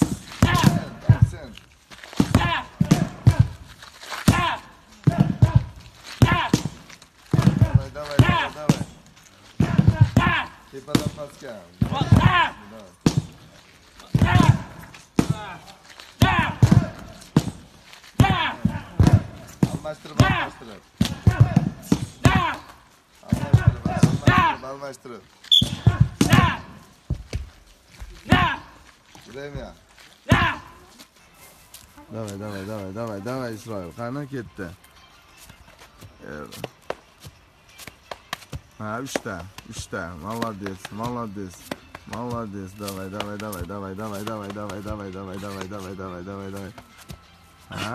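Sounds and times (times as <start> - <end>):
sledgehammer striking tyre: 0.0 - 9.0, 9.6 - 13.4, 14.1 - 15.6, 16.2 - 24.6, 25.5 - 27.4, 30.3 - 30.6
man calling out encouragement: 7.5 - 8.9, 19.7 - 22.7, 23.3 - 25.2
gloved hands slapping concrete: 37.8 - 45.9.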